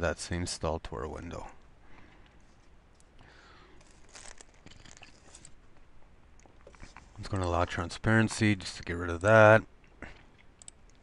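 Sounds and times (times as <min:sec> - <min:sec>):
low background hiss: 0:00.0 - 0:11.0
computer mouse clicks: 0:10.4 - 0:11.0.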